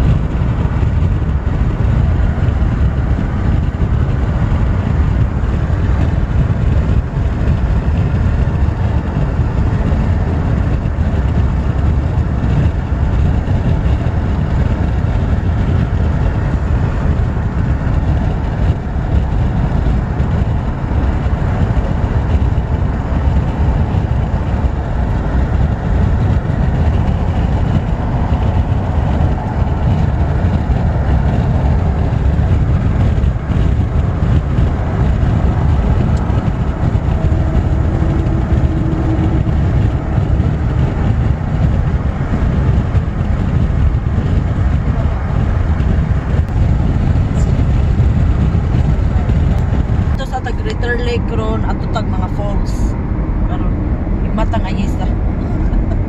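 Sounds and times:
car road noise: 0:00.0 - 0:56.0.

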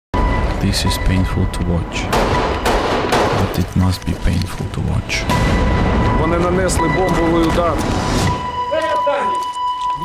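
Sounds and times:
gunshots: 0:02.1 - 0:03.8, 0:05.1 - 0:06.8
voices: 0:06.1 - 0:10.0.

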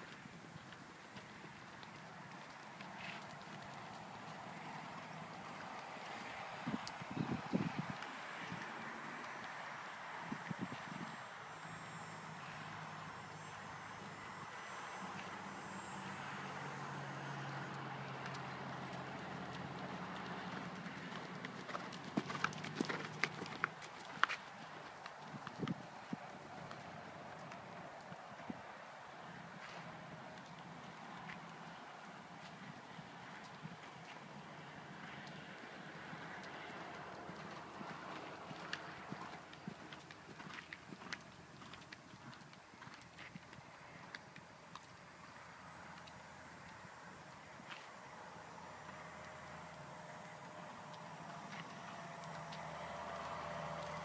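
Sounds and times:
vehicle engine humming: 0:00.0 - 0:54.0
horse hoofbeats on sand: 0:18.3 - 0:28.2, 0:36.6 - 0:44.1.

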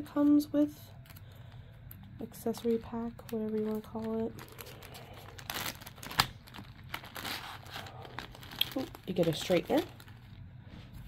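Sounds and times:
plastic bag crinkling: 0:00.9 - 0:10.5.

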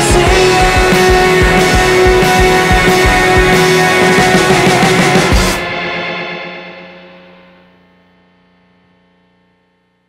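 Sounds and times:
distorted electric guitar chord ringing: 0:00.0 - 0:10.0.

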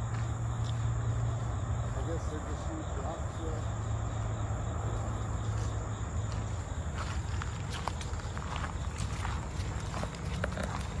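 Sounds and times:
footsteps on gravel and leaves: 0:05.5 - 0:11.0.

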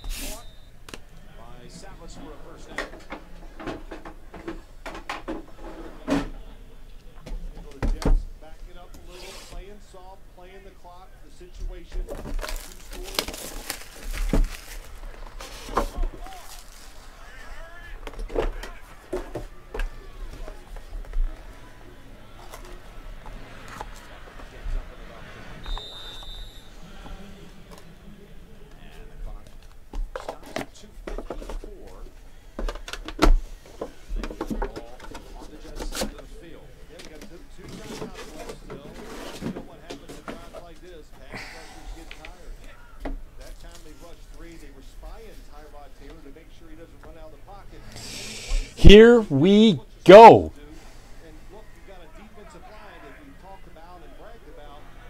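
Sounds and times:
faint television commentary: 0:00.0 - 0:48.8, 0:49.8 - 0:55.0
cardboard boxes and cards handled: 0:12.0 - 0:17.1, 0:29.4 - 0:31.7.

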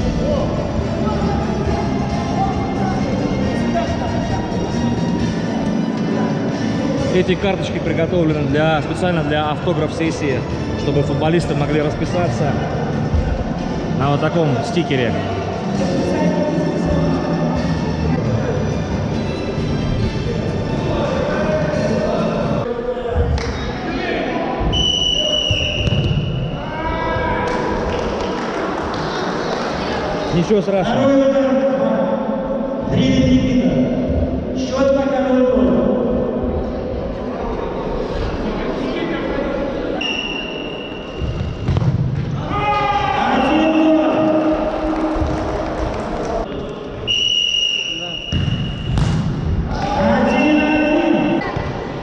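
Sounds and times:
voices echoing in a hall: 0:00.0 - 0:52.0
referee's whistle: 0:24.7 - 0:26.4, 0:40.0 - 0:41.2, 0:47.0 - 0:49.0, 0:50.2 - 0:51.4
ball kick knock: 0:48.3 - 0:49.4.

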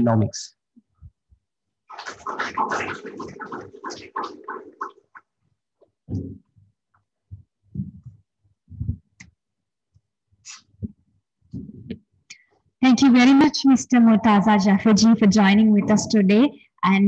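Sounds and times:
low thumps: 0:14.0 - 0:16.5.

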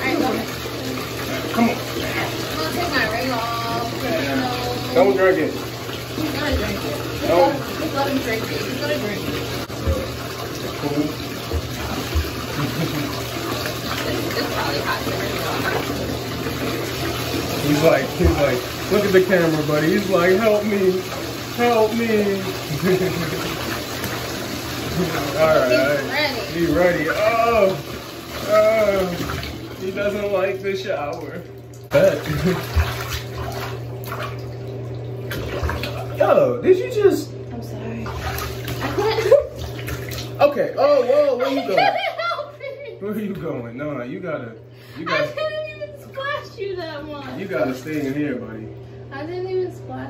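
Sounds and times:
water pouring into bathtub: 0:00.0 - 0:36.6, 0:38.0 - 0:42.4, 0:47.2 - 0:49.0.

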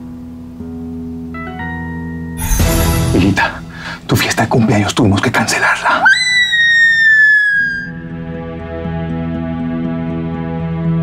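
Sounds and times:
girl's high-pitched scream: 0:06.0 - 0:08.0
low music drone: 0:08.0 - 0:11.0.

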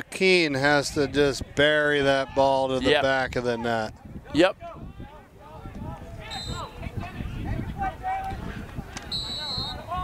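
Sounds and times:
players calling out: 0:05.0 - 0:07.0
referee whistle blast: 0:06.3 - 0:06.7, 0:09.1 - 0:09.9.

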